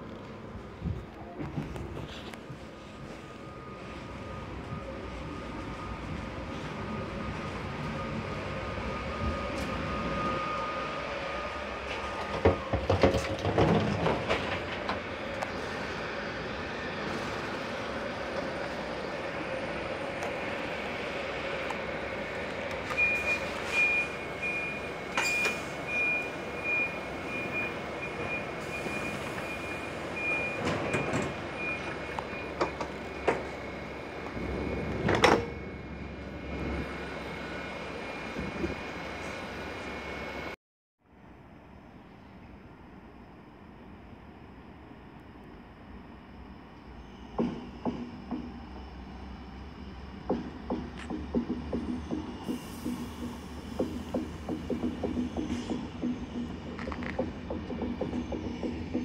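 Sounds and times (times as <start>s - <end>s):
train carriage hum: 0.0s - 59.0s
knocks and clatters: 12.2s - 15.0s, 50.3s - 59.0s
high electronic door beep: 23.0s - 32.6s.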